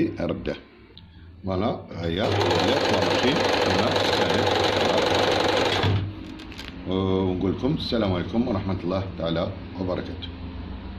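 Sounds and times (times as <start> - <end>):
sewing machine running fast: 2.2 - 6.1.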